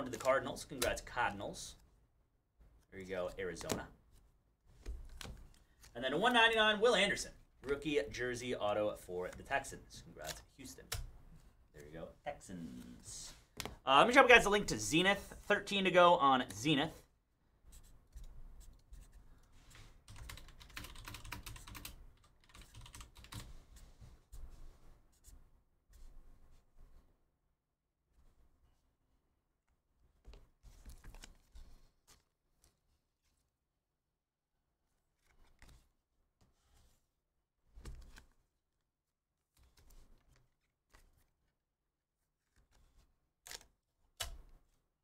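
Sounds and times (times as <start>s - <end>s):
typing on computer keyboard: 20.1s - 23.5s
trading cards rustling and scraping: 30.2s - 33.5s, 34.9s - 37.1s, 37.8s - 38.4s, 39.5s - 41.5s.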